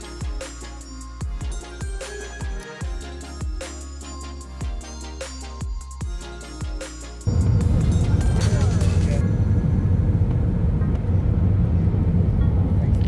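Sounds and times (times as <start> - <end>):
background music: 0.0 - 9.2
aircraft cabin engine rumble: 8.7 - 13.0.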